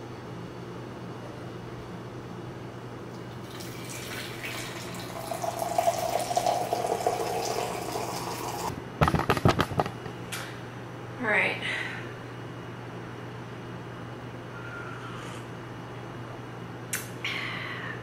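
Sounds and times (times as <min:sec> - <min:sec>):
coffee pouring into mug: 0:03.3 - 0:08.7.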